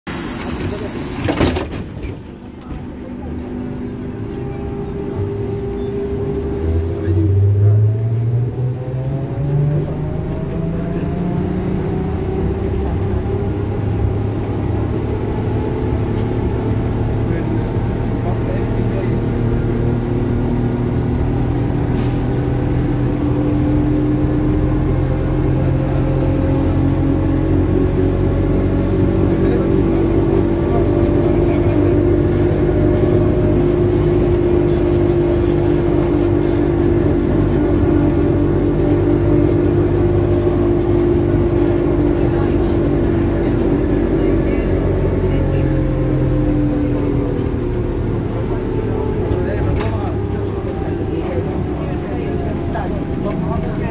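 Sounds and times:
low rumble of running bus: 0.1 - 53.9.

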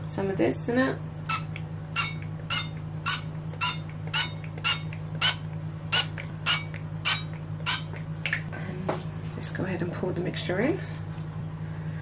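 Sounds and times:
faint pump squeak: 1.3 - 5.4, 6.0 - 7.9.

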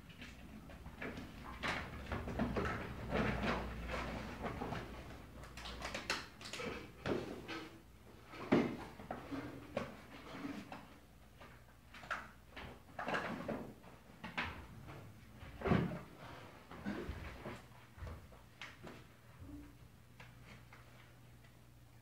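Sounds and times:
books rustling and knocking: 0.2 - 5.3, 6.9 - 11.6.

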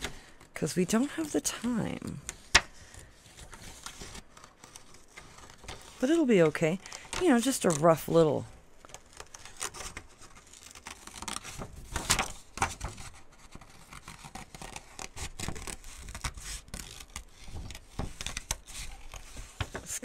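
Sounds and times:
paper crinkling: 0.0 - 20.0
scissors snipping paper: 13.4 - 19.8.

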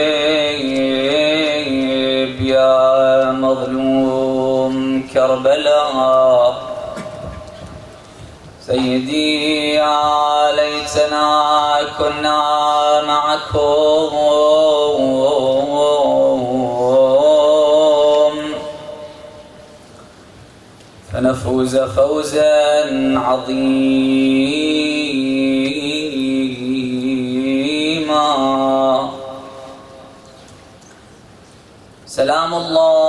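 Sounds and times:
man chanting melodic recitation: 0.0 - 19.8, 21.1 - 30.4, 32.0 - 33.0.

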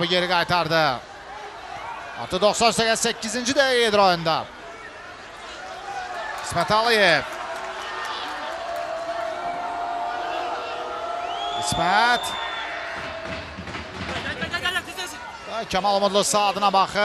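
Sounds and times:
crowd voices and calls: 0.0 - 17.0
loud shout: 5.6 - 13.5.

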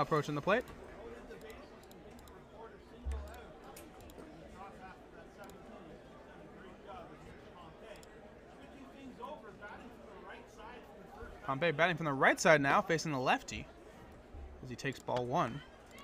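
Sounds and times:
murmur of spectator chatter: 0.0 - 16.0.

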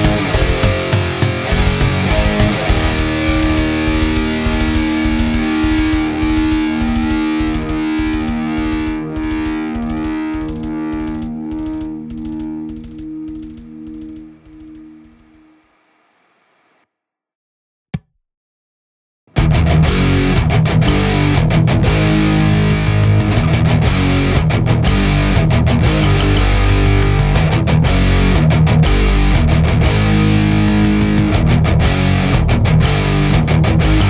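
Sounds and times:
programmed drum hits: 0.0 - 15.5, 19.4 - 34.0
distorted electric guitars: 0.0 - 16.8, 19.3 - 34.0.

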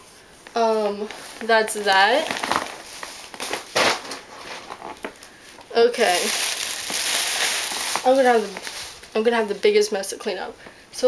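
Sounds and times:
plastic packaging crinkling: 0.6 - 9.7.

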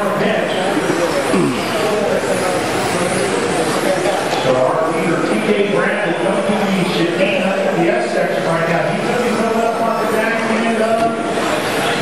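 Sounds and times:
rc cars motors whining: 0.0 - 12.0
voices in background: 0.0 - 12.0.

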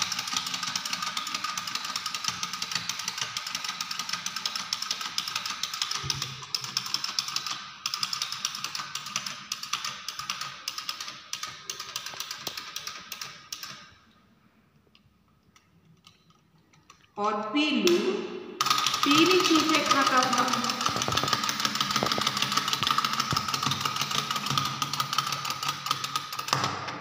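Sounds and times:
toy mechanism clicking: 0.0 - 14.0, 17.9 - 26.6.

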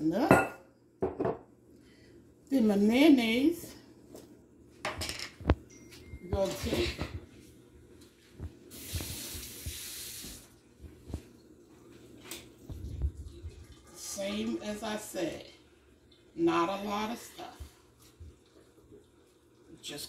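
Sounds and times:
kitchen tap running: 8.4 - 20.0.

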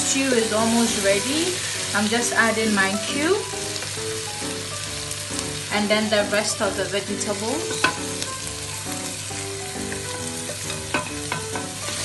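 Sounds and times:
stew sizzling in a pot: 0.0 - 12.0.

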